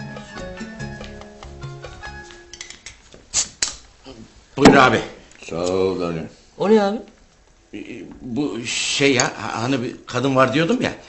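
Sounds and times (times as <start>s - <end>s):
background music: 0.0s - 2.8s.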